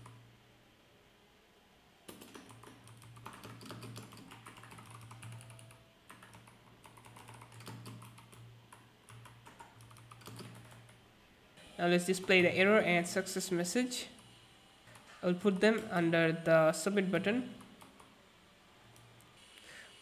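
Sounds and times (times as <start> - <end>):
low steady hum: 0.0 - 20.0
keyboard typing clicks: 2.1 - 11.0, 17.6 - 18.1.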